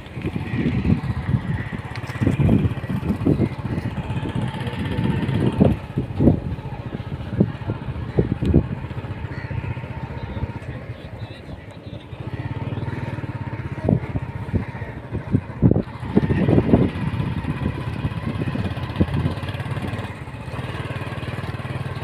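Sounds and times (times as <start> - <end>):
low uneven rumble: 0.0 - 22.0
vehicle engine running: 0.0 - 22.0.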